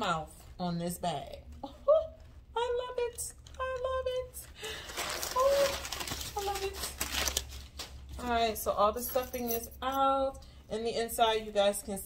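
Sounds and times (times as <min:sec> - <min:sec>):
crumpled paper rustling: 0:04.5 - 0:08.5.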